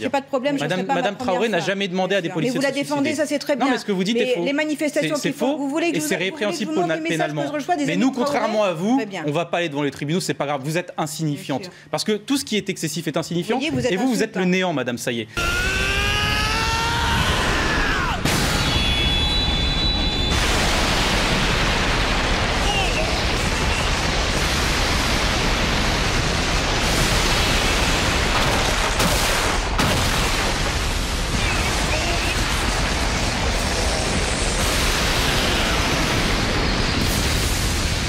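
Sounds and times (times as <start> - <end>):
loud rushing blast: 15.4 - 38.0
loud rushing sound effects: 30.4 - 38.0.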